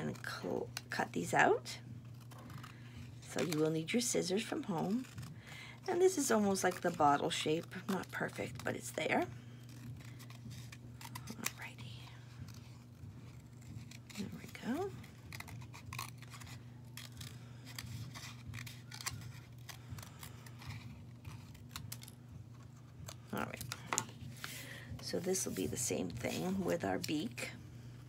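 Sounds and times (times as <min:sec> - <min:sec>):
scissors snipping paper: 0:00.0 - 0:22.2.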